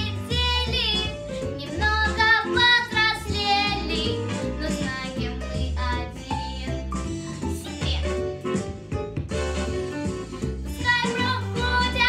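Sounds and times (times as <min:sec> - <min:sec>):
girl singing jazzy pop song: 0:00.0 - 0:08.4, 0:10.6 - 0:12.0
backing track with bass line: 0:00.0 - 0:12.0.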